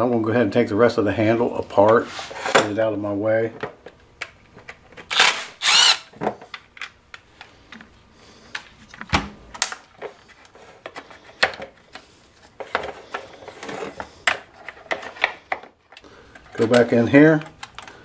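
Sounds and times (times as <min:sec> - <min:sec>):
cordless driver whirring: 0:05.1 - 0:06.1
plastic parts clicking and knocking: 0:12.6 - 0:18.0.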